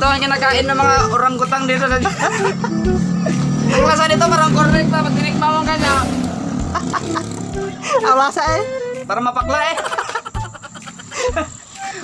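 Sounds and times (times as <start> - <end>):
people talking: 0.0 - 2.9, 3.6 - 6.2, 7.8 - 10.4
motor vehicle passing: 1.1 - 9.1.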